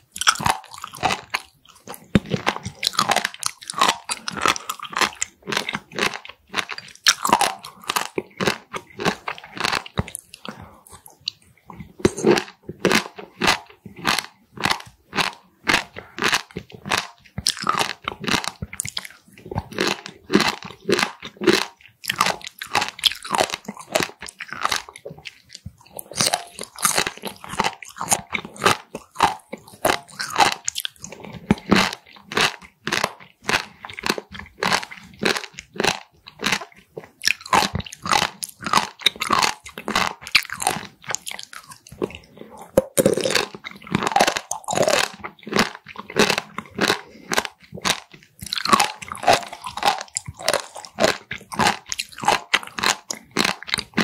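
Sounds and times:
chewing crunchy rubbery food: 0.0s - 54.0s.

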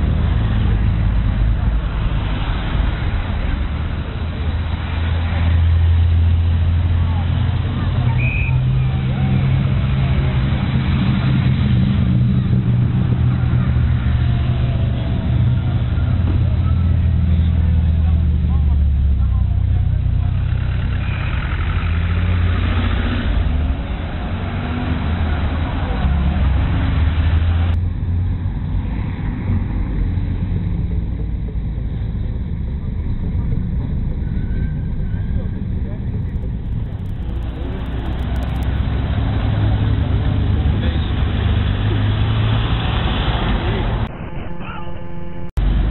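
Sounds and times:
car engines low drone: 0.0s - 45.9s
bystanders talking: 6.6s - 22.6s, 31.8s - 39.4s, 43.4s - 45.9s.

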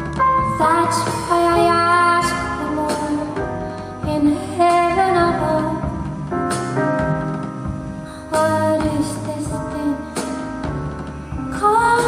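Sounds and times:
live band playing: 0.0s - 12.0s
woman singing into microphone: 0.5s - 6.0s, 8.3s - 10.2s, 11.5s - 12.0s.

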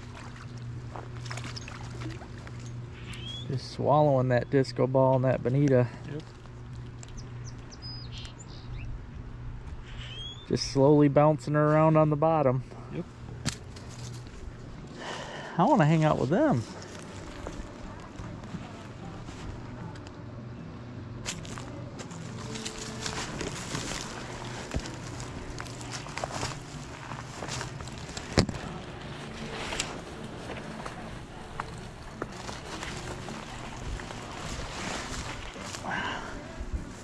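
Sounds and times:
steady low hum: 0.0s - 37.0s
branches rustling against body: 13.1s - 20.2s, 21.2s - 37.0s
twigs snapping: 13.4s - 14.4s, 21.2s - 35.9s
footsteps: 21.3s - 37.0s.

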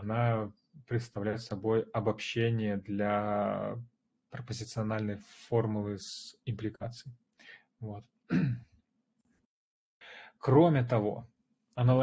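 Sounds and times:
man clearing his throat: 8.3s - 8.7s.

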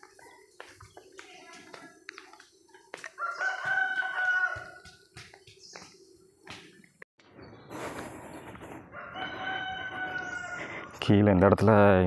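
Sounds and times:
footsteps on dirt path: 0.0s - 7.0s, 7.6s - 10.9s
rooster crowing: 3.2s - 4.8s, 8.9s - 10.9s.

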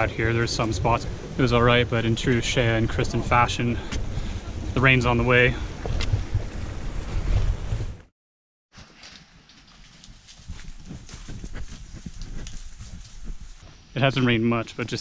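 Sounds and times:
wind rumbling on microphone: 0.0s - 8.1s, 9.8s - 15.0s
footsteps on dry leaves: 8.7s - 14.4s.

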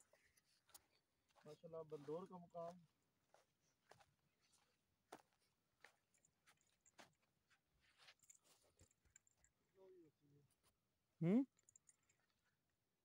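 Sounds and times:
faint irregular clicks: 11.6s - 12.5s.

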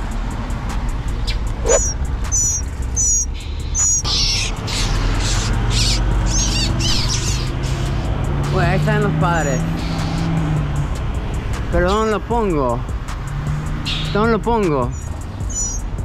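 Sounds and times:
small birds chirping: 1.2s - 8.3s, 9.3s - 10.4s, 13.7s - 16.0s.

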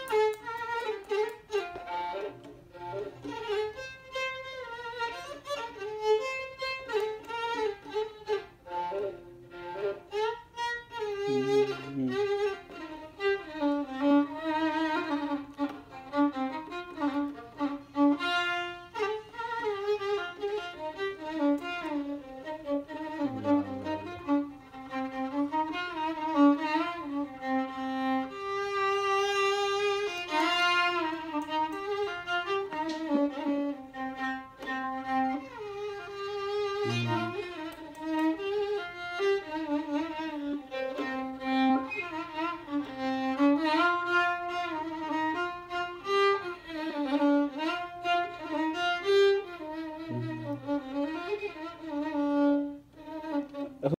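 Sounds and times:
solo violin melody: 0.0s - 53.9s.

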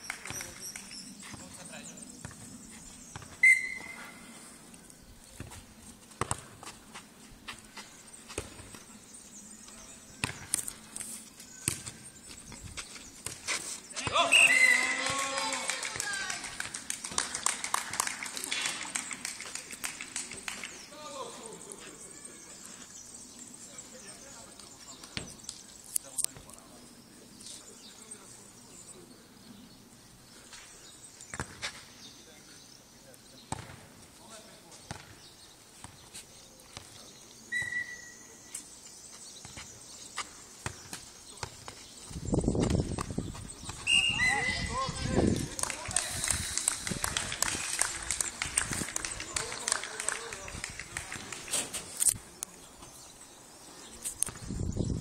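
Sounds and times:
ball kicked and bouncing thuds: 2.2s - 2.5s, 3.1s - 4.2s, 5.3s - 7.1s, 7.7s - 8.9s, 10.2s - 10.7s, 11.6s - 14.3s, 31.3s - 31.8s, 33.5s - 34.0s, 34.8s - 35.2s, 35.8s - 36.0s, 39.4s - 43.9s
whistle-like high tone: 3.4s - 4.1s, 14.3s - 14.9s, 37.5s - 38.2s, 43.8s - 44.7s
footsteps on clay: 5.2s - 8.9s, 9.6s - 14.3s, 38.6s - 44.0s.

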